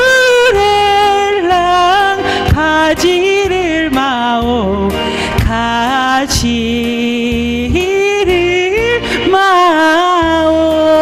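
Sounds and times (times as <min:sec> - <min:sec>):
musical accompaniment: 0:00.0 - 0:11.0
woman singing: 0:00.0 - 0:11.0.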